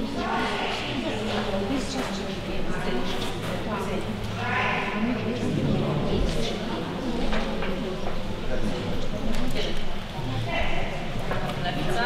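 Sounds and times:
voices in a hall: 0:00.0 - 0:12.0.

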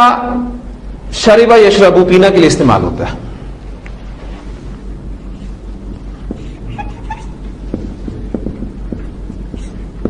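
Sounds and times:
low electrical hum: 0:00.0 - 0:10.0
marker squeaking on whiteboard: 0:06.2 - 0:10.0.

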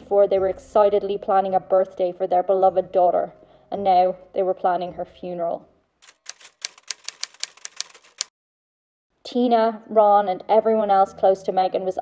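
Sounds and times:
typewriter keys clacking: 0:06.0 - 0:08.3.

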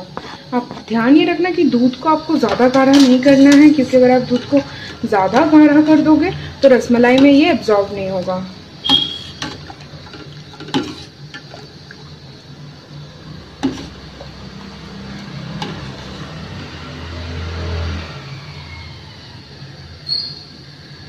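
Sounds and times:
liquid swishing in a pot: 0:13.1 - 0:16.5.

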